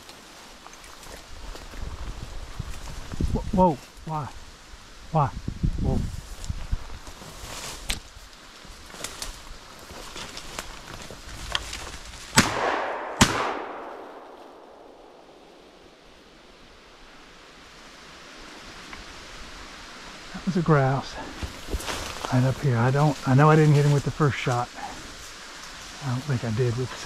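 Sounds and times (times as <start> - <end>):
shotgun shots: 12.4 - 15.3.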